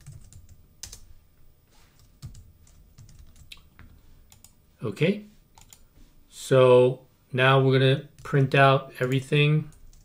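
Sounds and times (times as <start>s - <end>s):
faint computer keyboard typing: 0.0s - 1.1s, 2.0s - 4.6s, 5.5s - 5.9s, 9.0s - 10.0s.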